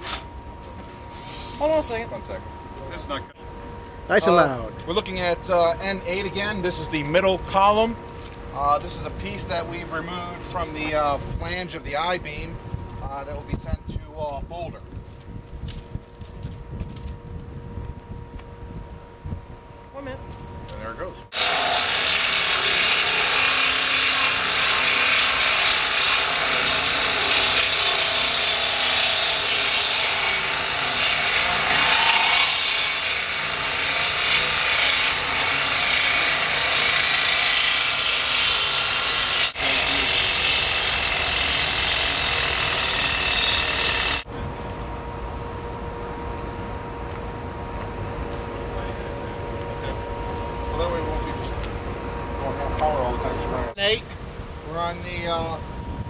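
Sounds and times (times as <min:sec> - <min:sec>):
steady hum: 0:00.0 - 0:43.6, 0:44.2 - 0:56.0
power saw cutting steel: 0:21.3 - 0:44.2.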